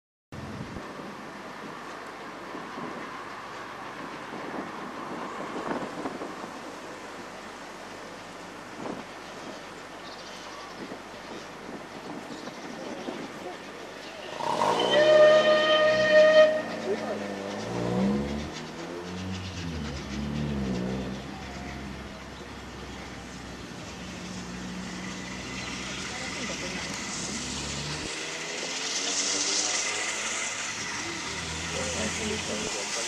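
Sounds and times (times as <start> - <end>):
steam hissing: 14.2 - 33.0
steam whistle blast: 14.3 - 17.1.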